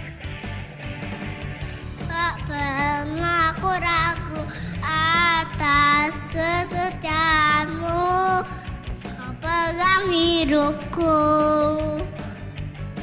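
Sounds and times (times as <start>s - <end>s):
backing music: 0.0s - 13.0s
boy singing into microphone: 2.1s - 12.2s.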